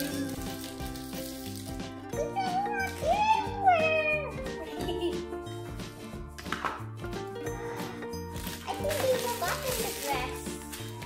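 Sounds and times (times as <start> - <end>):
paper wrapping crinkling: 0.0 - 3.5, 8.2 - 11.0
background music with steady beat: 0.0 - 11.0.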